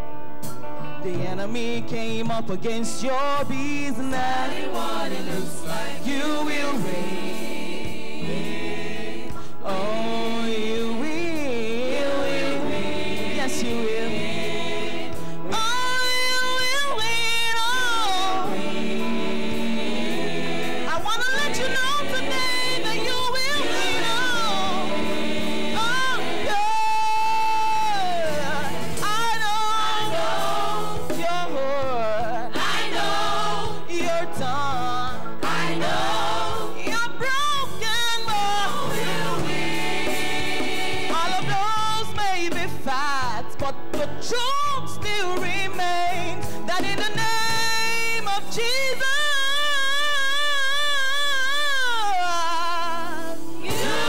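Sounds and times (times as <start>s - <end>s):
bass guitar: 0.0s - 54.0s
drums: 0.0s - 54.0s
keyboards: 0.0s - 54.0s
gospel choir singing: 3.0s - 54.0s.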